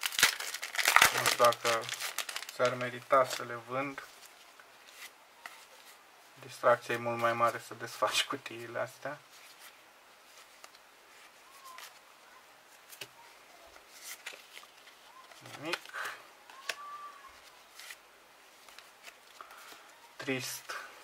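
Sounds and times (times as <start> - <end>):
cards rustling in hands: 0.0 - 12.1, 12.7 - 20.8.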